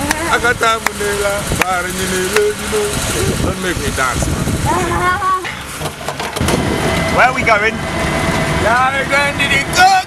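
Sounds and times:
low rumble: 6.4s - 9.7s.

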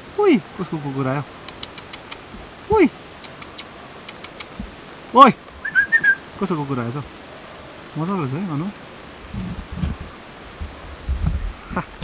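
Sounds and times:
outdoor background hiss: 0.0s - 12.0s
sharp high ticks: 1.4s - 2.3s, 3.2s - 4.6s.

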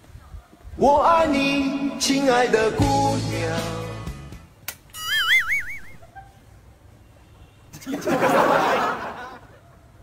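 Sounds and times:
warbling whistle-like tone: 5.0s - 6.0s.

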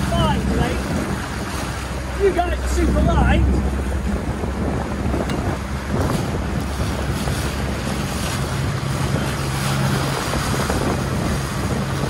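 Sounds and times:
outboard motor humming: 0.0s - 12.0s
water rushing past hull: 0.0s - 12.0s
wind buffeting microphone: 0.0s - 12.0s.

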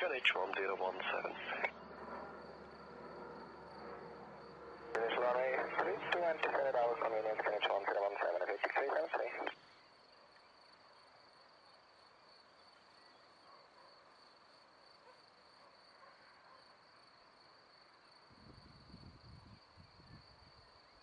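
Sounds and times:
radio voice transmission: 0.0s - 1.8s, 4.9s - 9.6s
insects chirring: 0.0s - 21.0s.

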